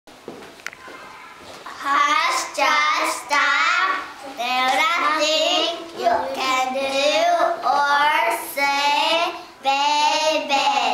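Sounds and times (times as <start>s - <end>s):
girls singing unaccompanied: 1.7s - 10.9s.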